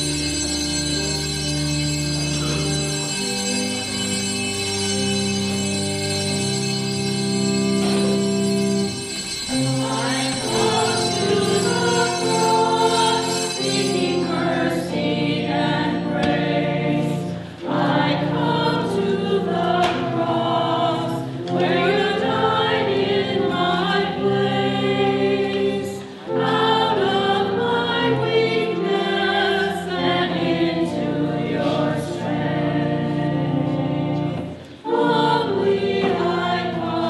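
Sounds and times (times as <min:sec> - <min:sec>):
organ: 0:00.0 - 0:37.0
church choir singing a hymn: 0:04.8 - 0:37.0.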